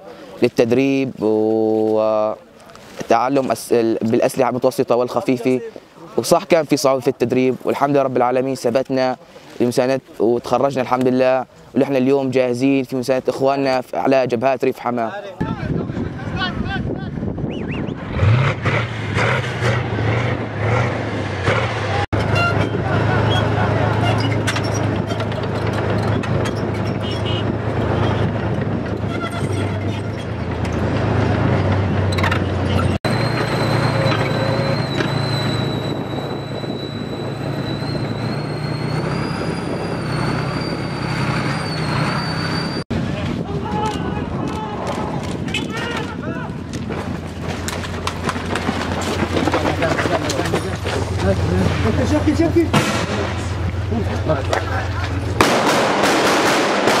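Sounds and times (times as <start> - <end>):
heavy military vehicle engines: 17.2 - 57.0.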